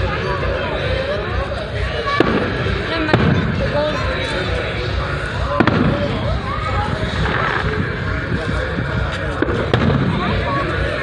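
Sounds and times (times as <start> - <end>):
crowd chatter: 0.0 - 11.0
firework bangs: 2.1 - 3.6, 5.4 - 6.4, 7.1 - 7.8, 9.4 - 10.5.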